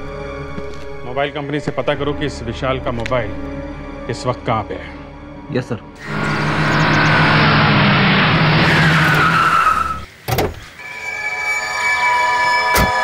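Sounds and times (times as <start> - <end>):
car engine running: 6.0 - 9.2
tyre squeal: 6.0 - 10.1.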